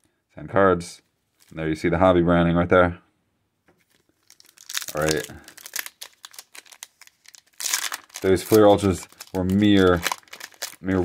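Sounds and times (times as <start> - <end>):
foil wrapper crinkling: 3.8 - 11.0
foil wrapper tearing: 3.9 - 11.0.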